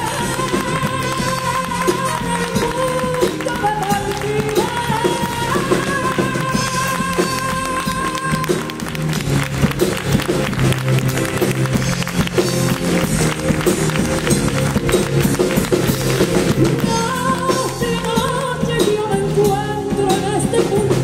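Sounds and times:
drums and piano: 0.0s - 21.0s.

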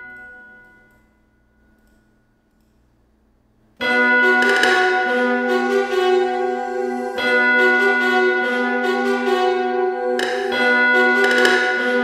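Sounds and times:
bell-like instrument tones: 3.8s - 12.0s.

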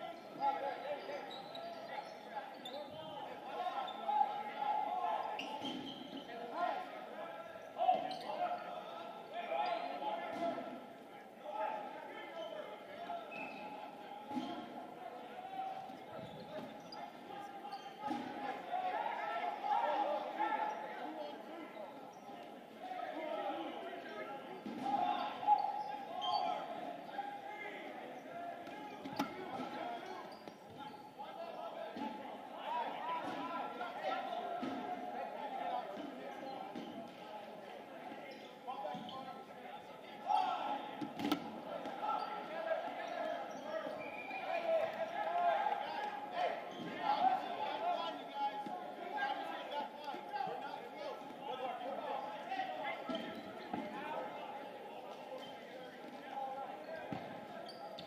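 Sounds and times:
chatter of many people: 0.0s - 58.0s
players calling and shouting: 0.0s - 58.0s.

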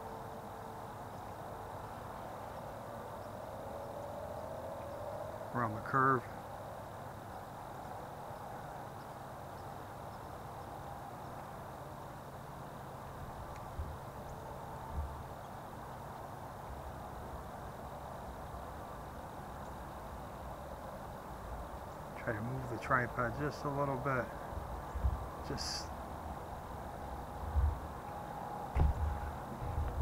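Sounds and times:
low hum: 0.0s - 30.0s
outdoor background hiss: 0.0s - 30.0s
soft low thumps: 27.5s - 27.8s, 28.7s - 30.0s.

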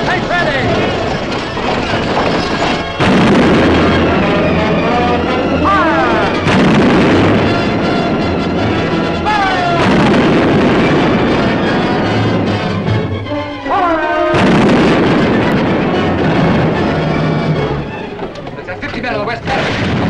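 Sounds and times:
cannon booms: 0.0s - 13.3s, 14.3s - 18.1s, 19.4s - 20.0s
orchestral film score: 0.0s - 20.0s.

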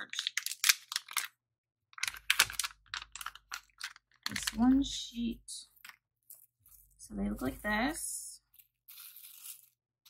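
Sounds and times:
plastic packaging crinkling: 0.0s - 1.4s, 2.0s - 5.0s, 5.7s - 10.0s.

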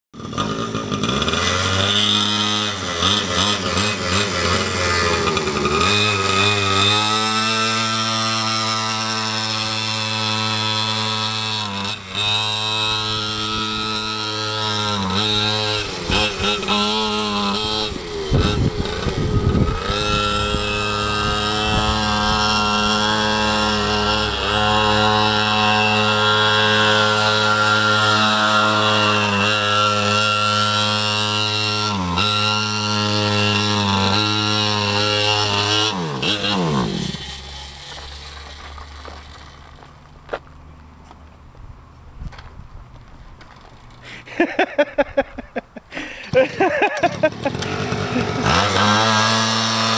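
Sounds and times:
small quad engine revving: 0.2s - 40.4s, 43.6s - 49.9s.

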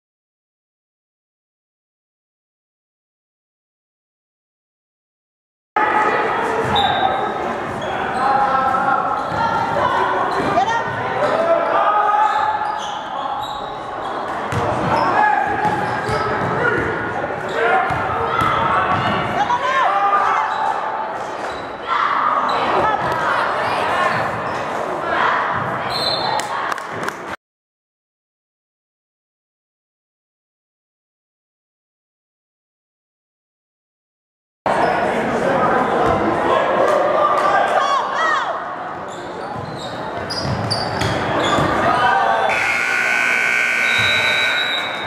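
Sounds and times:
voices echoing in hall: 5.8s - 27.0s, 34.7s - 45.0s.

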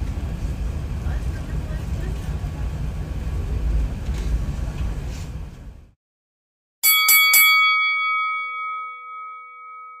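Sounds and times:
bell ringing: 6.8s - 10.0s.

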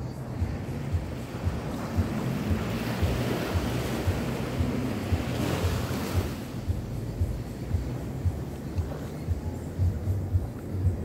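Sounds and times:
small waves washing on sand: 0.0s - 11.0s
soft low thuds: 0.0s - 11.0s.

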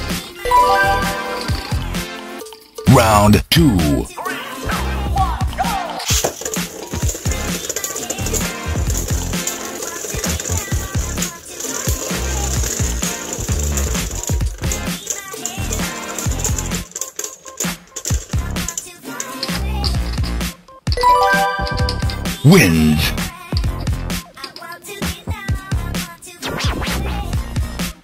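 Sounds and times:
background music: 0.0s - 17.3s, 19.4s - 24.2s
spinning tops clicking together: 0.5s - 1.8s, 6.0s - 20.4s
spinning tops whirring on plastic: 5.7s - 20.5s.

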